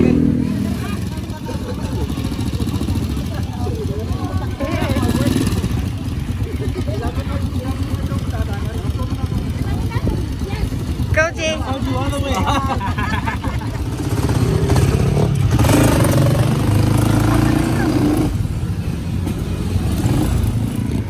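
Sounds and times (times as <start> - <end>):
people talking: 0.0 - 13.6, 16.9 - 18.3
motorcycle engine idling: 0.4 - 16.2.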